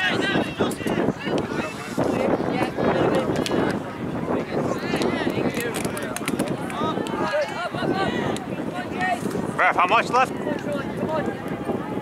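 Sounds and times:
people calling out: 6.7 - 9.2.

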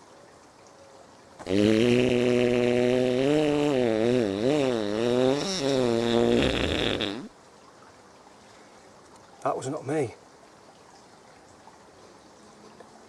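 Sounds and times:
long buzzing fart noise: 1.4 - 7.3.

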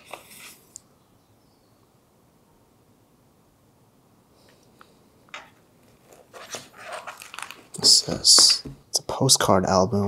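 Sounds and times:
album pages rustling: 0.0 - 0.7, 5.3 - 8.8.

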